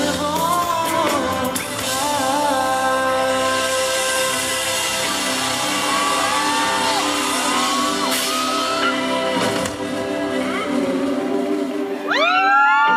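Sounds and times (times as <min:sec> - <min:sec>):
electric guitar chords: 0:00.0 - 0:12.9
live band playing: 0:00.0 - 0:12.9
fans shouting: 0:04.0 - 0:12.9.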